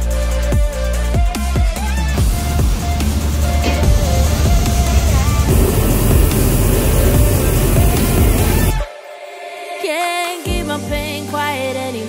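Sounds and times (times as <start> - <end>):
background music: 0.0 - 12.0
propane burner roaring: 2.1 - 8.8.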